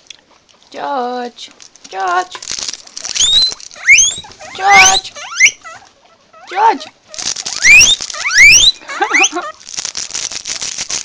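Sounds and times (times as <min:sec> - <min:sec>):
crackling rustle: 0:00.0 - 0:11.0
guinea pig squealing: 0:02.8 - 0:11.0.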